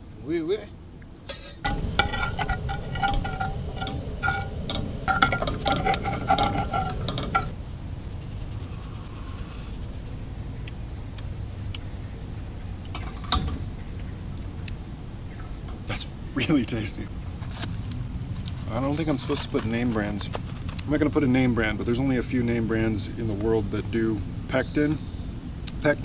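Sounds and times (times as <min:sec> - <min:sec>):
metal spoon clinking in pot: 0:01.3 - 0:07.5
low rumble: 0:01.6 - 0:10.2.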